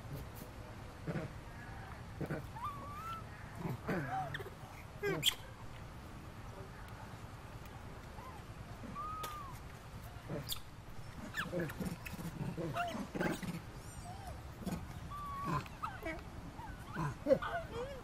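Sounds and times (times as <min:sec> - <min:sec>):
macaques calling: 0:02.2 - 0:05.5, 0:08.2 - 0:09.6, 0:10.3 - 0:18.0.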